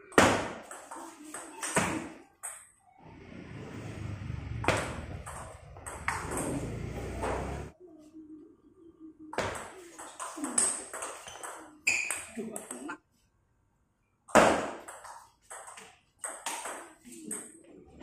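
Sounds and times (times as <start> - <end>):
table tennis ball hits: 0.1 - 2.7, 4.6 - 7.6, 9.4 - 12.4, 14.3 - 17.5.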